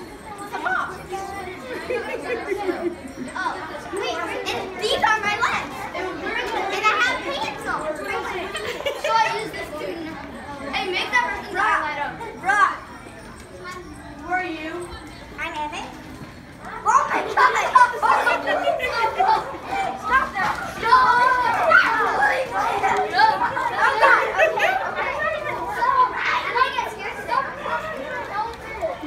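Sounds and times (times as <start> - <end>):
children chattering: 0.0 - 29.0.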